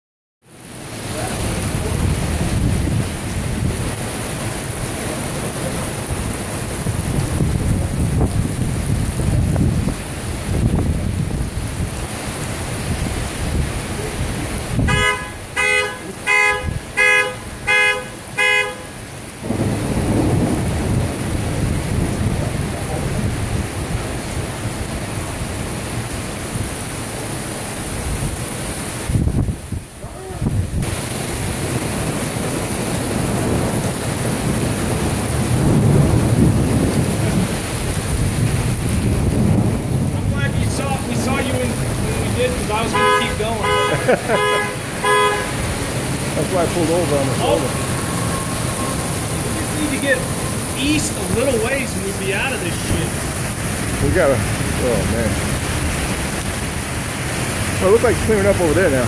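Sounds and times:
torrential rain: 0:00.4 - 0:59.0
thunder rumbling: 0:01.1 - 0:18.4, 0:19.4 - 0:25.8, 0:30.4 - 0:59.0
short horn blasts: 0:14.8 - 0:19.0, 0:42.8 - 0:45.7.

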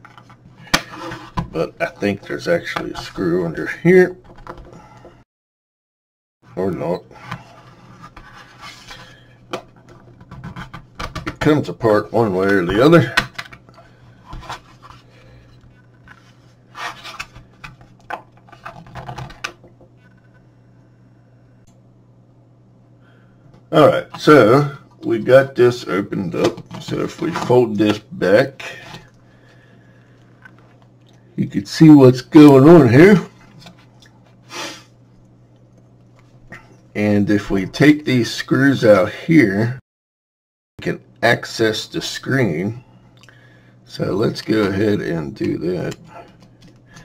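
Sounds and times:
faint steady low hum: 0:06.5 - 0:39.7, 0:40.8 - 0:47.0.

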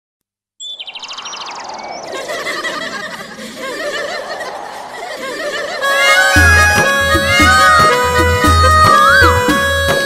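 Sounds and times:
bird chirping trill: 0:00.6 - 0:03.0
steady rushing background: 0:00.8 - 0:07.5.

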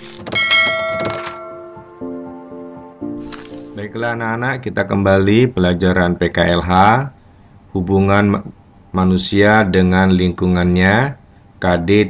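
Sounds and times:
bright ringing chime: 0:00.4 - 0:02.1.

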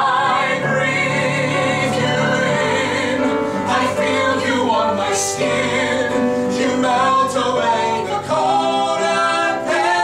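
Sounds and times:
man and woman singing duet: 0:00.0 - 0:10.0.

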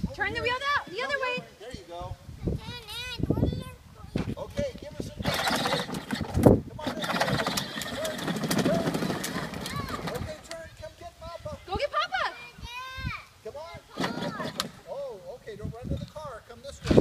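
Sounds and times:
toy truck wheels rattling on asphalt: 0:05.1 - 0:10.8.

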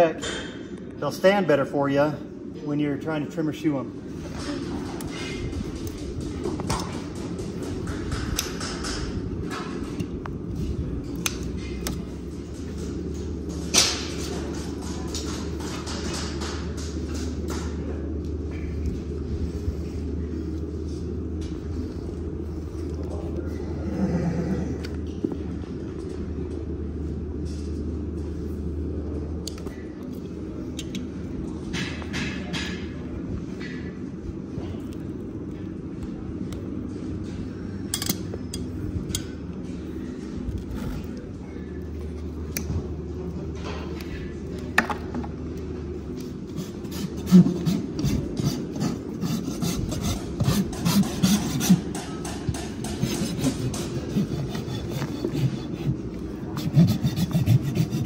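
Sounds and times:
rasp filing hoof: 0:46.5 - 0:58.0.

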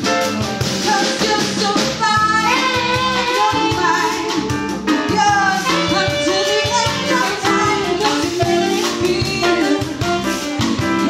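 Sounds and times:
drum kit and hand drums: 0:00.0 - 0:11.0
live latin-jazz band: 0:00.0 - 0:11.0
woman singing into a microphone: 0:00.3 - 0:11.0.

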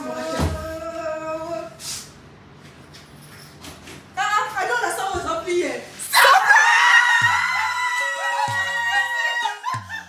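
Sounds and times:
woman screaming: 0:06.1 - 0:10.0.

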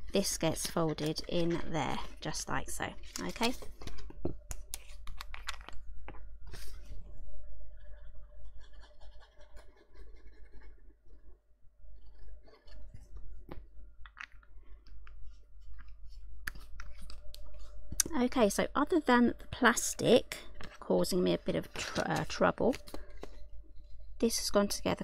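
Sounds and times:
paper rustling: 0:03.0 - 0:04.1, 0:21.4 - 0:23.4.

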